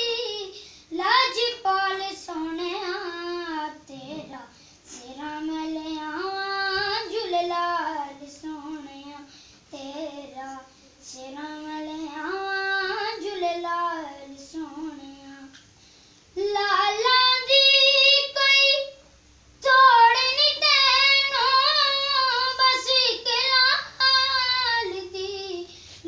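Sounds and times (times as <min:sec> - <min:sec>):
boy singing unaccompanied: 0:00.0 - 0:15.6, 0:16.4 - 0:19.0, 0:19.6 - 0:25.7.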